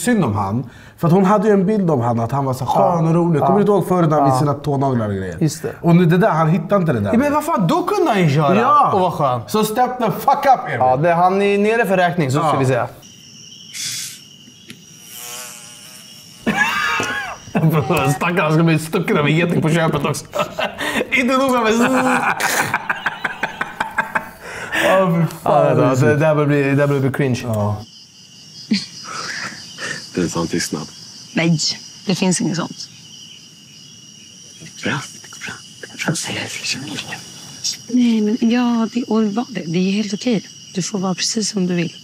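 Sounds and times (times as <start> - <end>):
crickets chirring: 0.0 - 42.0
short breathy hiss: 13.7 - 14.3
person speaking loudly: 17.6 - 18.6
person speaking: 17.6 - 22.4.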